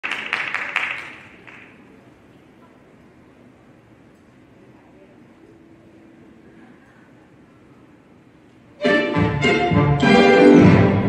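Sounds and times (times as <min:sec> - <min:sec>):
audience applause: 0:00.0 - 0:01.8.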